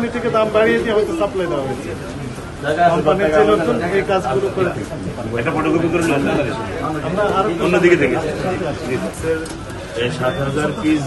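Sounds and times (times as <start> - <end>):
men talking in a crowd: 0.0 - 11.0.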